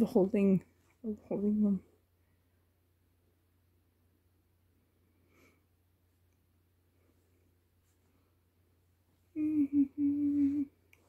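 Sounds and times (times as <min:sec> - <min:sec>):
woman humming: 0:09.3 - 0:10.8.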